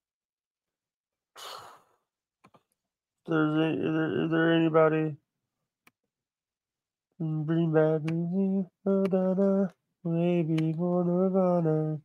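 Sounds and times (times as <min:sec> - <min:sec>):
person sighing: 0:01.4 - 0:02.0.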